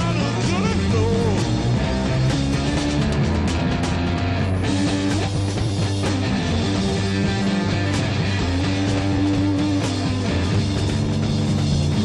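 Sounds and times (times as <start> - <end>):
bass guitar line: 0.0 - 12.0
electric guitar notes: 0.0 - 12.0.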